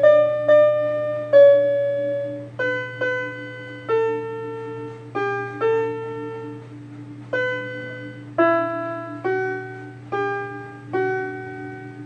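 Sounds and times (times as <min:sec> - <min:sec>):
electronic piano melody: 0:00.0 - 0:12.0.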